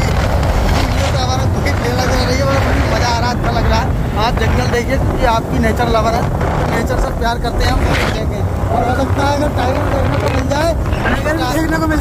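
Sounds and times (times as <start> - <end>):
motorcycle running noise: 0.0 - 12.0
wind on microphone: 0.0 - 12.0.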